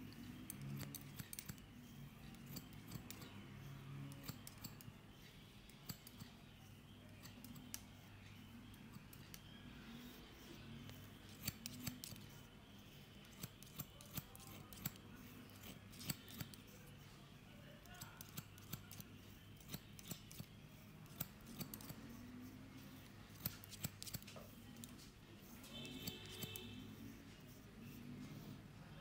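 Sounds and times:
scissors snipping hair: 0.0s - 12.4s, 13.1s - 16.9s, 17.8s - 28.1s.

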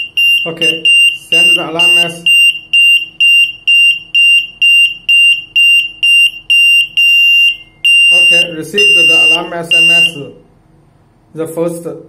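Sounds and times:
alarm buzzer beeping rapidly: 0.0s - 10.2s.

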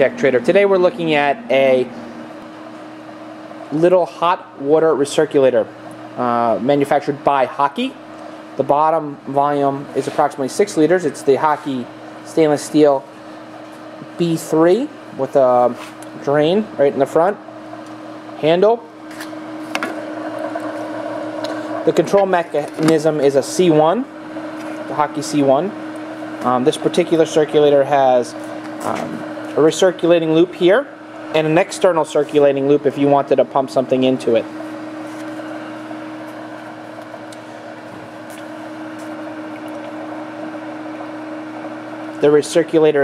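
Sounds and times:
pump motor hum: 0.0s - 43.0s.

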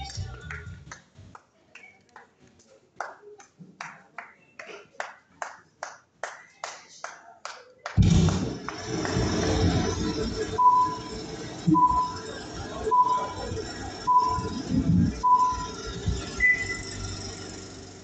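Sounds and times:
loud burst over sound system: 8.0s - 18.0s
short countdown beeps: 10.6s - 11.1s, 11.7s - 14.6s, 15.2s - 15.7s.

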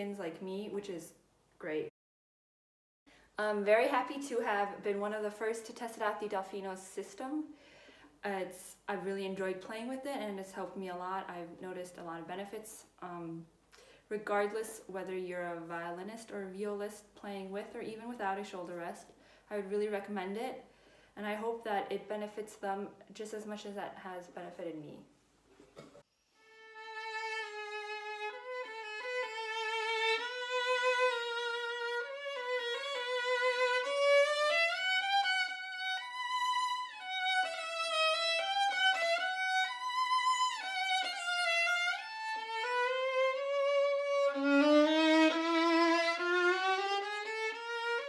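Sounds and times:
solo violin melody: 26.3s - 48.0s.

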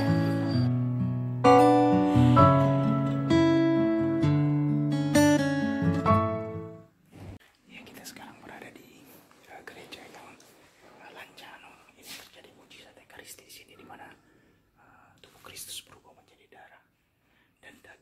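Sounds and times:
man whispering: 7.6s - 17.0s, 17.6s - 18.0s.

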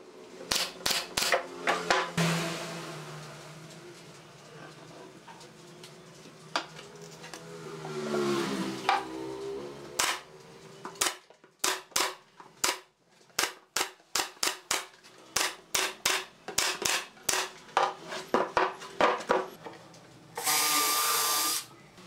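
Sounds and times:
nail gun firing: 0.5s - 1.4s, 10.0s - 10.2s, 11.0s - 12.8s, 13.4s - 17.5s.

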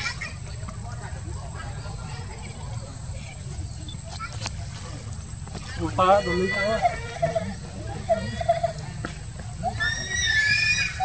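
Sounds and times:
monkey screaming: 9.6s - 11.0s.

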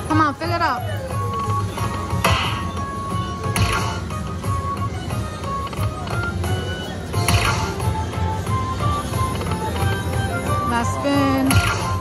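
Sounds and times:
slot machine beeping bonus music: 0.2s - 12.0s.

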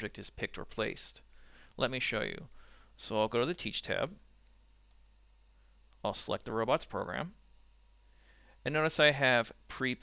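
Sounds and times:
low steady hum: 0.0s - 10.0s
computer mouse click: 4.4s - 5.3s.

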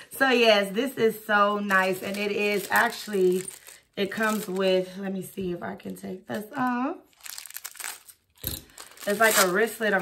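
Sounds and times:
packaging crinkling: 1.6s - 4.9s, 6.6s - 10.0s.

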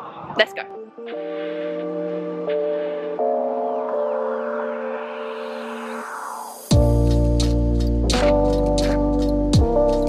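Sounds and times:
slow held chords music: 0.5s - 5.9s, 6.7s - 10.0s.

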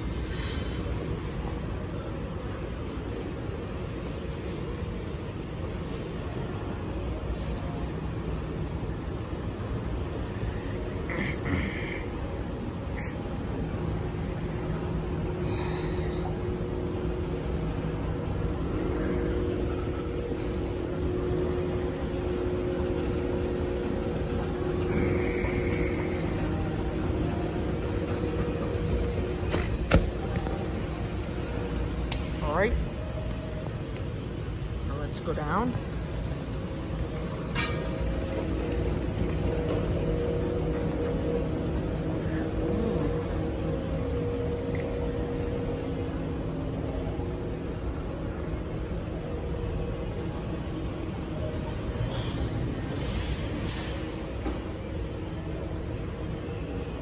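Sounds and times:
moving walkway hum and rumble: 0.0s - 57.0s.

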